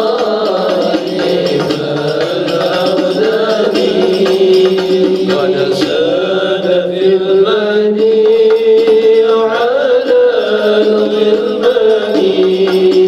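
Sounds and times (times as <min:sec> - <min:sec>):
frame drums beating: 0:00.0 - 0:13.0
man singing devotional song: 0:00.0 - 0:13.0.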